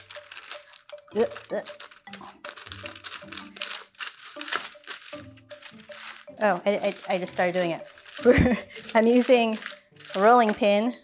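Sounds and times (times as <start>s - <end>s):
background music: 0.0s - 11.0s
parchment paper crinkling: 0.0s - 11.0s
rolling pin rolling dough: 2.5s - 11.0s.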